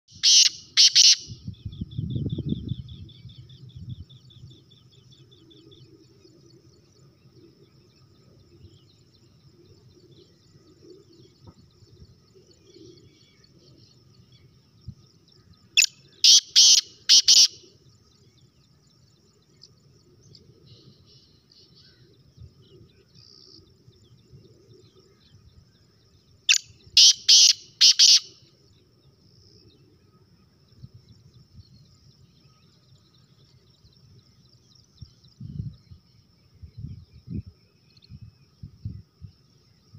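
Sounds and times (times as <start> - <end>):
francolin calling sharp notes: 0.2 - 1.3.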